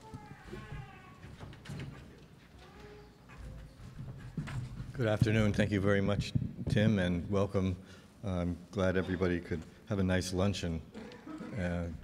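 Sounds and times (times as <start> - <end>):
shuffling footsteps: 0.0 - 7.2
man speaking: 5.0 - 10.9, 11.5 - 12.0.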